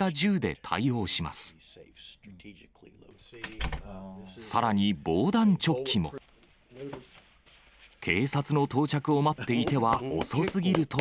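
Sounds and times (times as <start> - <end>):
man talking: 0.0 - 7.1, 8.0 - 11.0.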